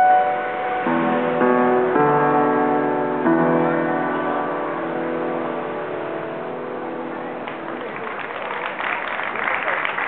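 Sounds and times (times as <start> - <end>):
piano chord ringing: 0.0 - 7.7.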